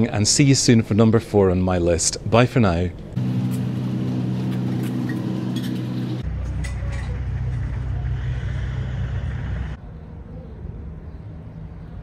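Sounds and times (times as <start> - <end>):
deeper engine hum: 3.0 - 12.0
vehicle engine idling: 3.2 - 9.8.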